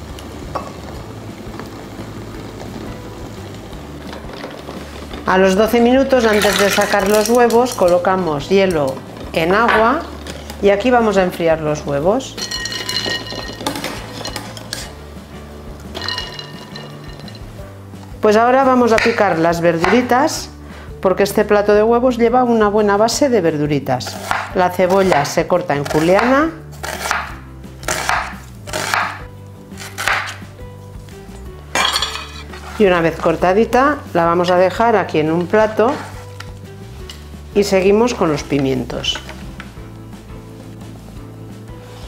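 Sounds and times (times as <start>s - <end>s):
wire strainer clinking on glass: 12.4s - 14.9s, 16.0s - 17.4s
knife slicing onion on cutting board: 24.0s - 29.2s, 29.8s - 30.4s.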